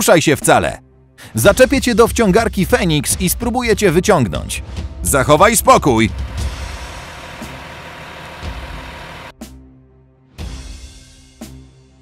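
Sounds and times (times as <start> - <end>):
truck engine running: 5.3 - 9.3.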